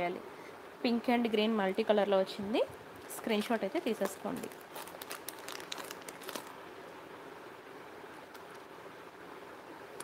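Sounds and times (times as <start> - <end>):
plastic pouches crinkling: 3.0 - 6.6.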